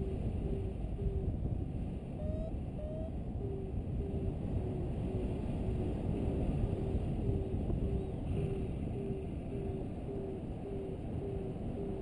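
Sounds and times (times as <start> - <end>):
wind rushing over microphone: 0.0 - 12.0.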